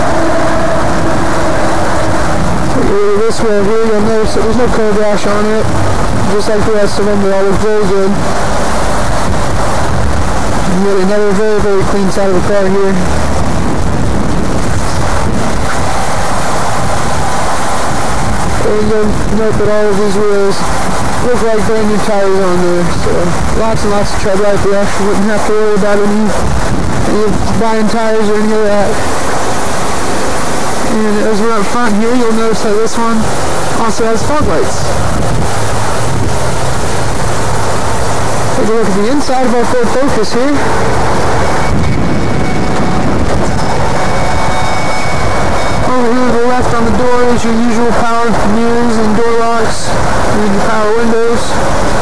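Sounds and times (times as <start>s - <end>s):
loud rushing noise: 0.0s - 52.0s
low hum: 0.0s - 52.0s
wind buffeting microphone: 0.0s - 52.0s.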